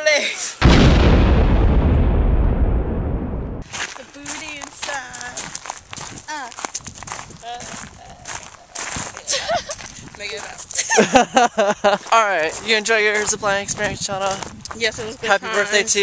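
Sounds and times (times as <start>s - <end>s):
deep boom sound effect: 0.6s - 3.6s
people talking and laughing: 9.0s - 16.0s.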